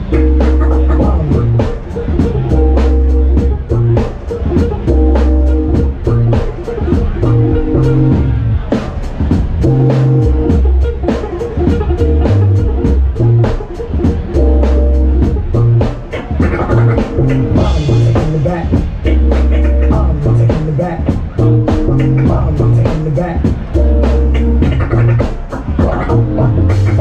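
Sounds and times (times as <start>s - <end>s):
deep electric bass riff: 0.0s - 8.8s, 9.6s - 27.0s
drum kit: 0.0s - 27.0s
guitar: 0.0s - 27.0s
keyboard chords: 0.0s - 27.0s.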